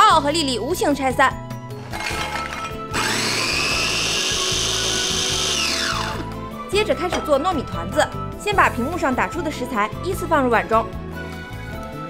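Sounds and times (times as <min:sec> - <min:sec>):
food chopper motor whine: 0:01.8 - 0:06.3.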